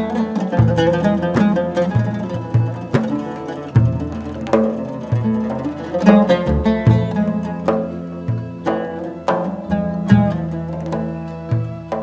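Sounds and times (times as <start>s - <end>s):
double bass notes: 0.0s - 12.0s
oud plucking a melody: 0.0s - 12.0s.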